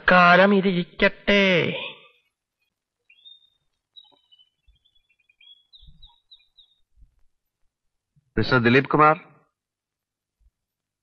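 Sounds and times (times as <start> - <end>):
faint birds chirping: 1.7 - 11.0.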